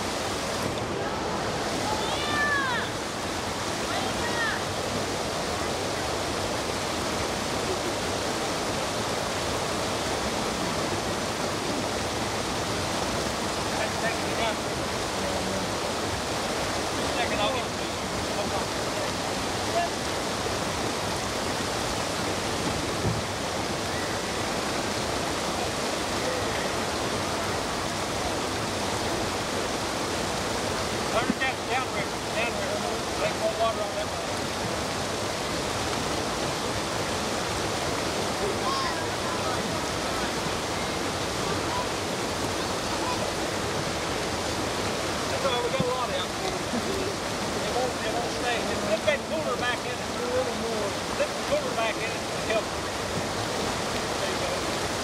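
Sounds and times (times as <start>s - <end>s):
river water rushing over rocks: 0.0s - 55.0s.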